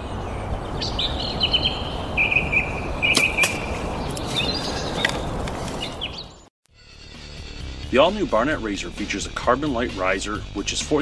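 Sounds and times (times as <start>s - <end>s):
birds chirping: 0.0s - 6.5s.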